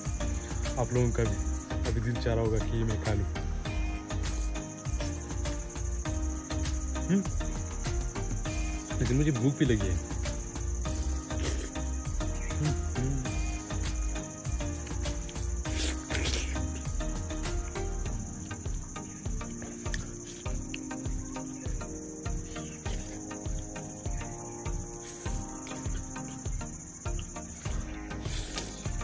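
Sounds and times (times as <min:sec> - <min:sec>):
insects trilling: 0:00.0 - 0:29.0.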